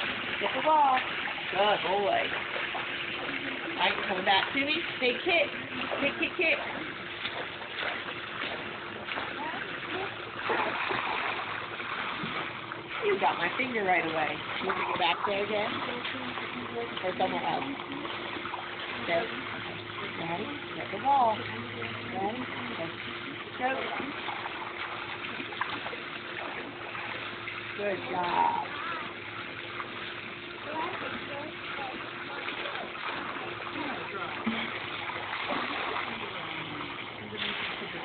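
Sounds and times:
low steady hum: 0:00.0 - 0:38.0
pool water sloshing: 0:00.0 - 0:38.0
woman speaking: 0:00.4 - 0:02.3, 0:03.8 - 0:06.8, 0:13.0 - 0:17.8, 0:27.8 - 0:28.9.

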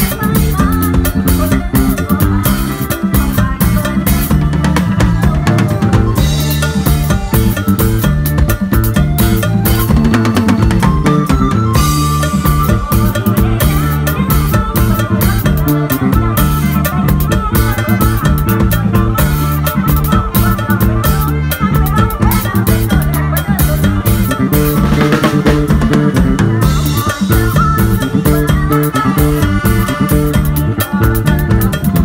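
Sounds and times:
drum kit played busily: 0:00.0 - 0:32.0
live band music: 0:00.0 - 0:32.0.

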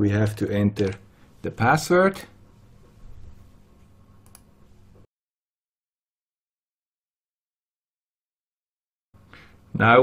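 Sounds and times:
faint low room noise: 0:00.0 - 0:05.1, 0:09.2 - 0:10.0
computer mouse click: 0:04.2 - 0:04.5.

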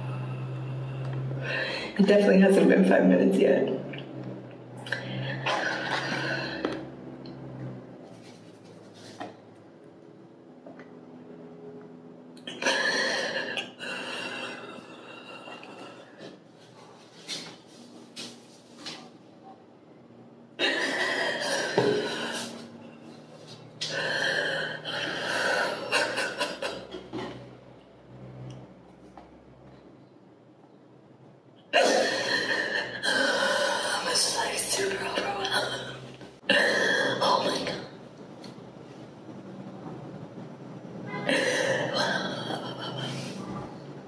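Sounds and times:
woman sobbing: 0:20.6 - 0:22.5, 0:24.0 - 0:26.9, 0:41.3 - 0:43.2.

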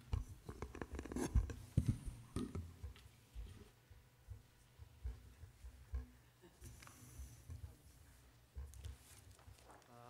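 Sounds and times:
papers rustling on wooden desk: 0:08.6 - 0:09.9.

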